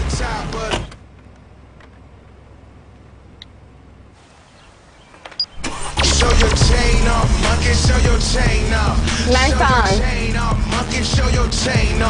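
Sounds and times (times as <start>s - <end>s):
car engine idling: 0.0s - 4.2s, 4.9s - 12.0s.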